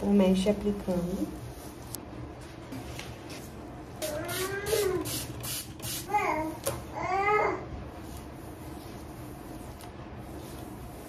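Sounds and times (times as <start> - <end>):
baby babbling: 6.1 - 7.6.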